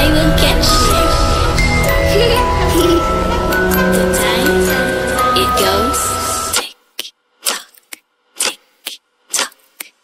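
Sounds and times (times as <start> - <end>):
electronic music: 0.0 - 6.6.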